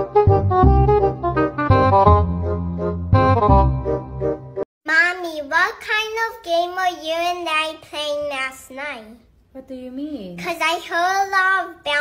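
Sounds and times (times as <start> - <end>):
high-pitched child-like voice speaking: 4.9 - 9.3, 10.4 - 12.0.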